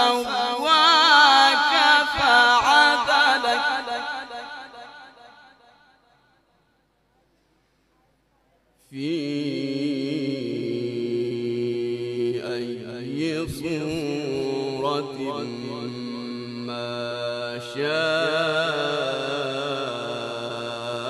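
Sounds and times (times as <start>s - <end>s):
man chanting melodically: 0.0s - 5.1s, 8.8s - 21.0s.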